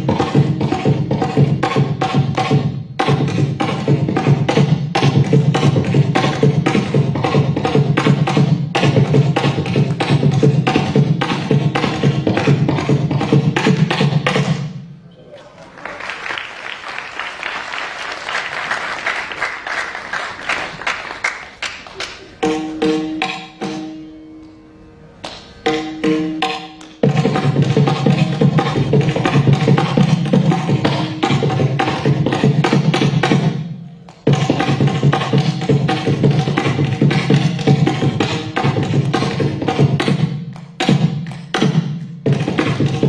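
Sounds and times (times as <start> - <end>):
applause: 15.4 - 22.4.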